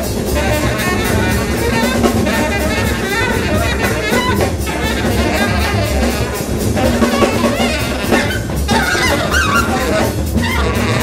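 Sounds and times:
double bass: 0.0 - 11.0
drum kit: 0.0 - 11.0
saxophone wavering high notes: 0.4 - 6.2, 7.0 - 11.0.

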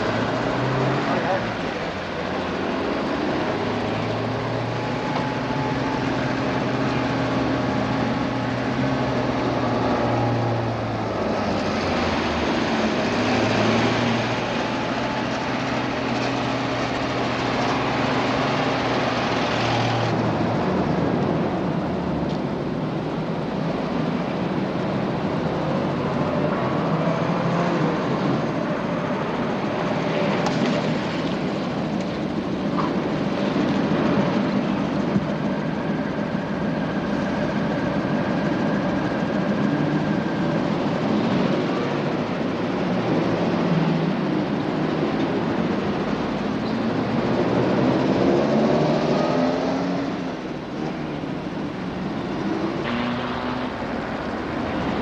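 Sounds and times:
cars passing on street: 0.0 - 55.0
low engine hum: 0.0 - 55.0.

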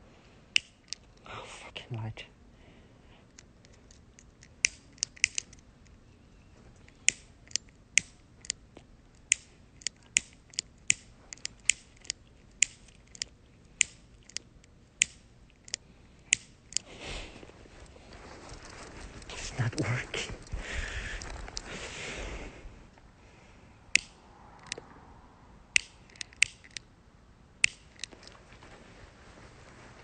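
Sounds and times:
short breathy rush: 19.3 - 25.4.

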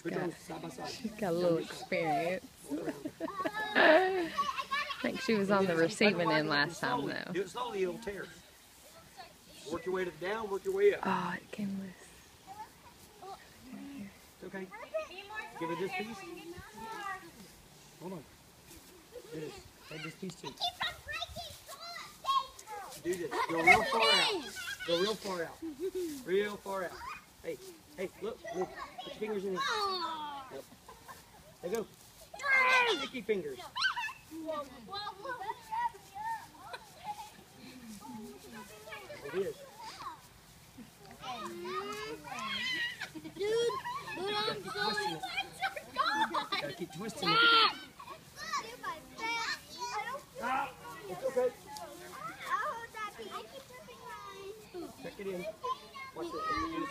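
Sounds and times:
children chattering and calling out: 0.0 - 56.9.

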